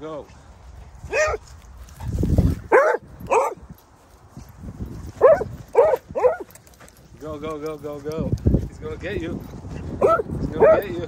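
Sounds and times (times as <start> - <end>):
dog barking in play: 1.1 - 1.4, 2.7 - 3.6, 5.2 - 6.5, 10.0 - 10.8.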